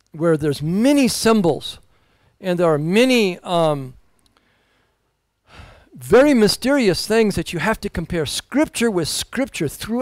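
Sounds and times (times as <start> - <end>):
man speaking: 0.2 - 4.0, 6.0 - 10.0
man breathing in: 1.9 - 2.4, 4.4 - 6.0.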